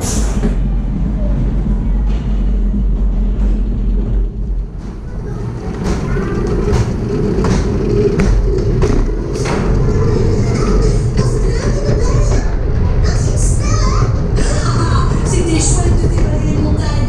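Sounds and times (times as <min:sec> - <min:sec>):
regular knocks of roller coaster: 0:00.0 - 0:17.0
roller coaster wheels rumbling: 0:00.0 - 0:17.0.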